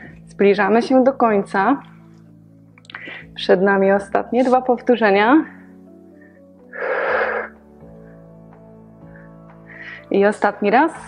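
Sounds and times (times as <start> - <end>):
background music: 0.0 - 11.0
forceful breath out: 6.2 - 8.3.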